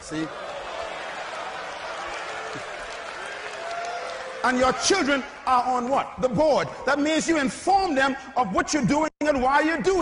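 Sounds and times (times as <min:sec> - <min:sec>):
audience applauding: 0:00.0 - 0:05.2.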